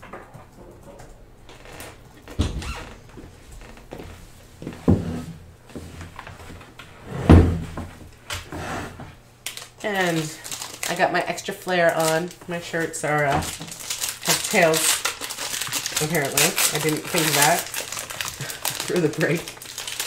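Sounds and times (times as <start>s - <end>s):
woman speaking: 9.8s - 13.6s, 14.2s - 15.0s, 16.0s - 17.7s, 18.8s - 19.5s.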